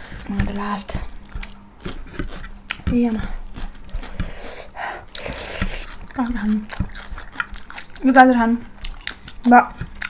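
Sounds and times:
chewing: 0.0s - 10.0s.

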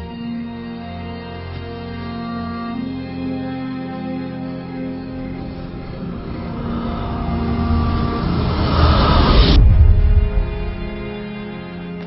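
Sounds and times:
soundtrack music: 0.0s - 12.0s
whoosh with deep rumble: 5.0s - 11.8s.

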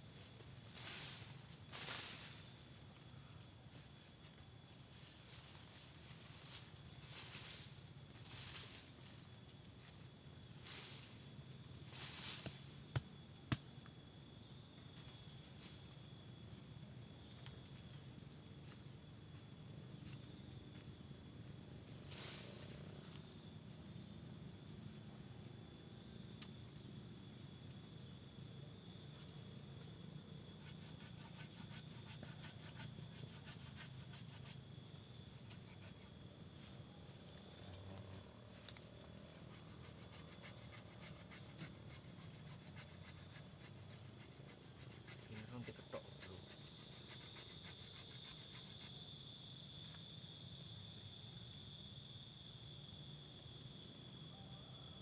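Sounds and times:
high-pitched insect chorus: 0.0s - 55.0s
scraping and scuffing of soil: 0.7s - 2.9s.

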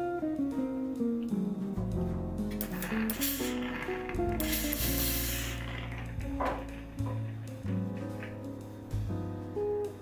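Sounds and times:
acoustic guitar music: 0.9s - 9.8s
steam iron hissing: 2.7s - 6.0s.

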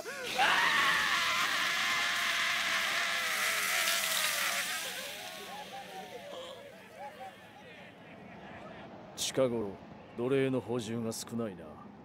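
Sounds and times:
man crying out in strain: 0.0s - 6.7s.

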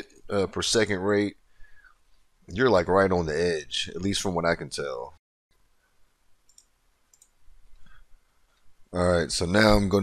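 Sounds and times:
faint short clicks: 6.5s - 7.4s.

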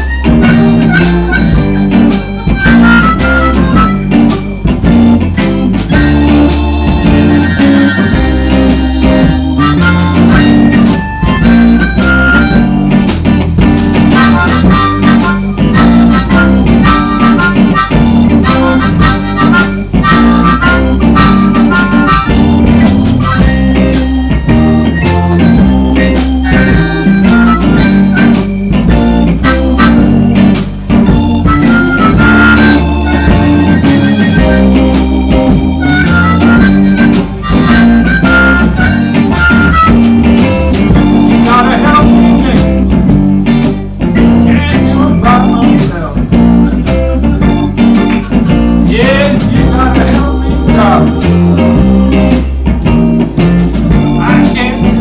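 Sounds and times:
amplified harmonica solo: 0.0s - 45.8s
blues band playing: 0.0s - 55.0s.

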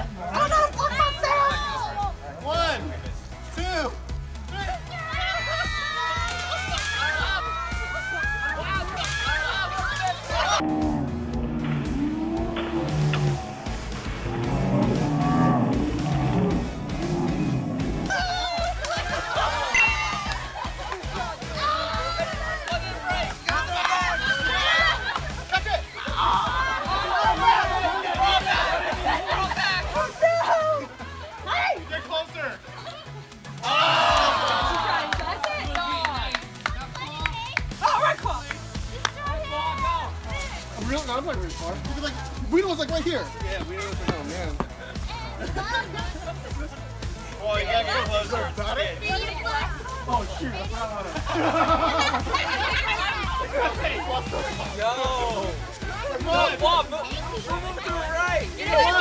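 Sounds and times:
background music with steady beat: 0.0s - 59.0s
crowd shouting and cheering: 4.5s - 31.9s, 33.5s - 36.4s
slowed-down voices moaning: 10.3s - 18.3s.

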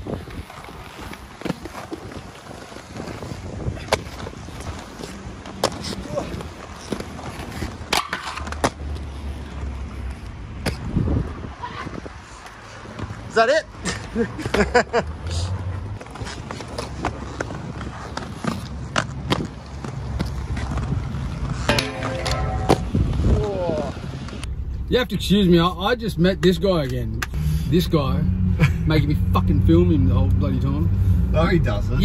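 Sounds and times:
skate wheels rolling on concrete: 0.0s - 25.0s
wind on microphone: 10.7s - 12.3s, 22.6s - 24.2s.

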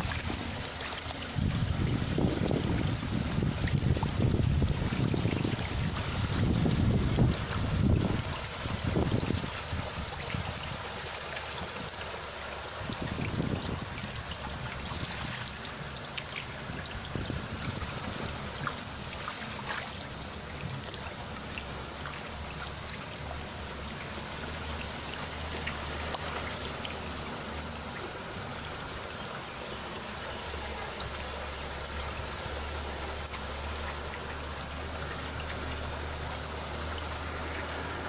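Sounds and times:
wind buffeting microphone: 0.0s - 10.9s, 12.8s - 15.5s, 16.5s - 19.1s
water moving in fish tank: 0.0s - 38.0s.

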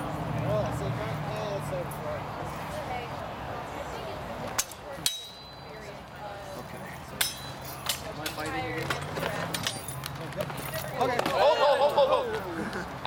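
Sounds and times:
murmur of voices: 0.0s - 13.0s
fencing swords clashing: 4.6s - 5.6s, 7.2s - 10.2s.

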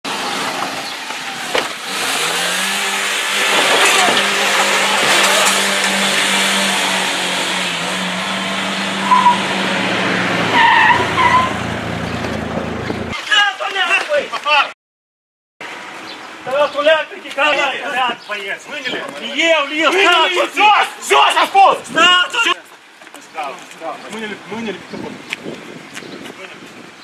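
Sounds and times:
road and wind noise: 0.0s - 14.6s, 15.6s - 27.0s
car engine revving: 0.1s - 13.1s.

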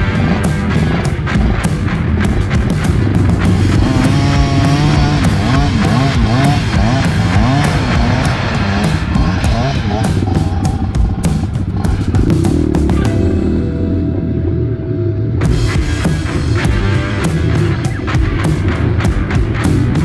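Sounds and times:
dirt bike engine revving: 0.0s - 20.0s
rock music: 0.0s - 20.0s.

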